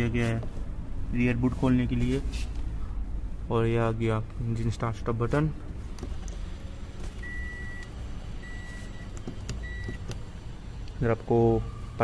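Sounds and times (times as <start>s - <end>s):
car warning chime beeping: 7.2s - 10.2s.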